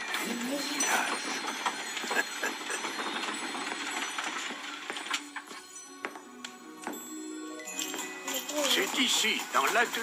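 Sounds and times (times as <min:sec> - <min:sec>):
rattling clattering noise: 0:00.0 - 0:05.6, 0:07.8 - 0:10.0.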